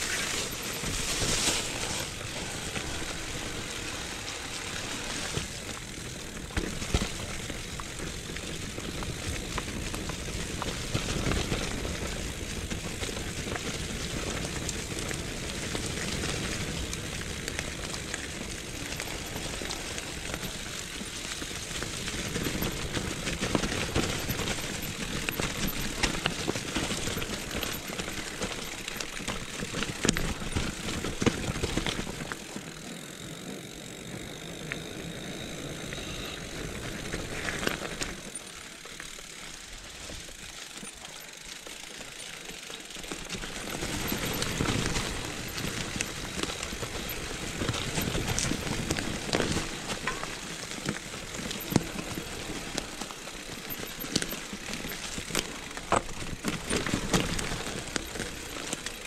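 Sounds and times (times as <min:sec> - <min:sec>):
bike knocking and rattling: 0:00.0 - 0:59.0
bike tyres rushing over trail: 0:00.0 - 0:59.0.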